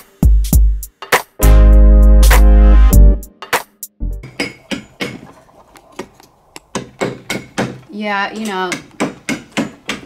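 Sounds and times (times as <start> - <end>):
burst of music: 0.2 - 3.3
hammer tapping chisel: 4.2 - 5.3, 6.0 - 10.0.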